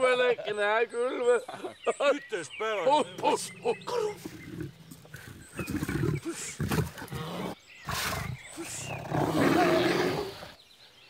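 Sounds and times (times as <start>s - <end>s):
bear roaring: 3.2s - 10.5s.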